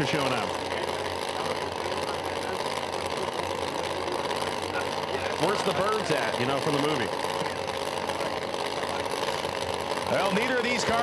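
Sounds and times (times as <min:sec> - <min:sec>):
race car engines idling: 0:00.0 - 0:11.0.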